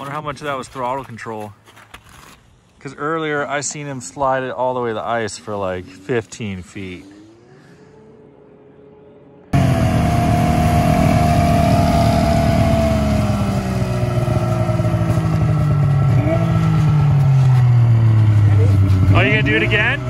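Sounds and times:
snowmobile engine running: 0:09.5 - 0:20.0.

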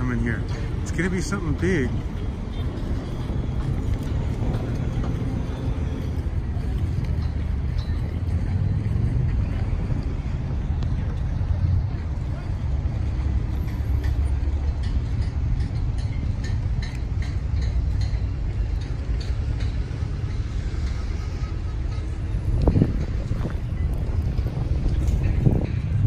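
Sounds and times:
low steady city rumble: 0:00.0 - 0:26.0.

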